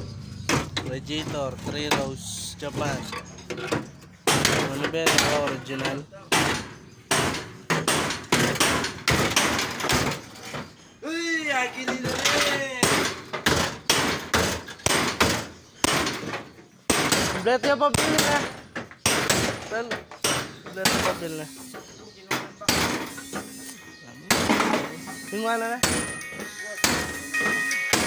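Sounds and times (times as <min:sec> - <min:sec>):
hammer striking sheet steel: 0:24.3 - 0:28.0.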